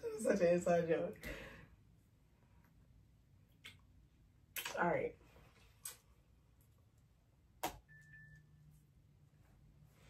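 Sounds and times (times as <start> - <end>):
faint thin high tone: 7.9 - 8.8.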